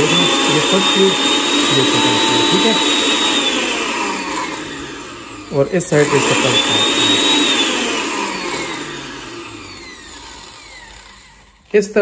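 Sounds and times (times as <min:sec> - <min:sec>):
food processor motor whirring: 0:00.0 - 0:12.0.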